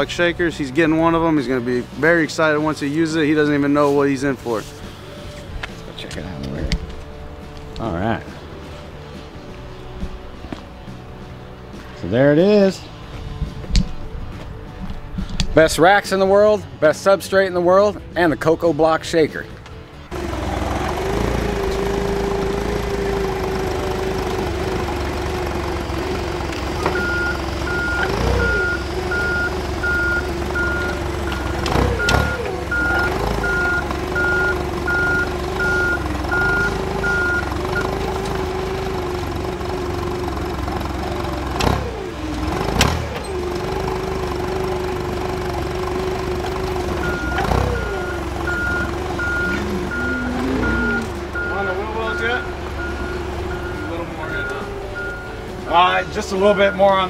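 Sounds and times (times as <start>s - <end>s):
forklift engine running: 19.8s - 57.0s
reversing alarm beeps: 26.9s - 37.9s, 47.0s - 57.0s.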